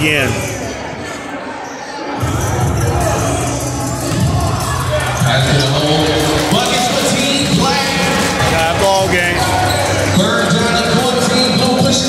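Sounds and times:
music: 0:02.2 - 0:12.0
voices: 0:04.6 - 0:12.0.

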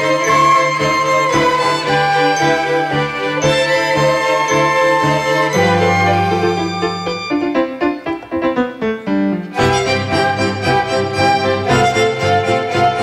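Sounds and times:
orchestra playing classical music: 0:00.0 - 0:08.4, 0:09.5 - 0:13.0
held low string notes: 0:09.5 - 0:13.0.

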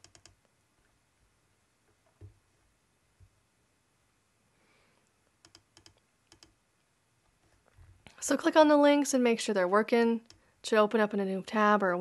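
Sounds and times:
faint computer mouse clicks: 0:00.0 - 0:00.4, 0:05.4 - 0:06.6.

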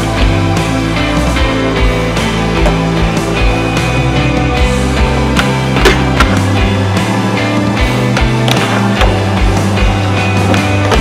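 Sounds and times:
rock music with guitar: 0:00.0 - 0:11.0
skateboard wheels rolling on concrete: 0:00.0 - 0:11.0.

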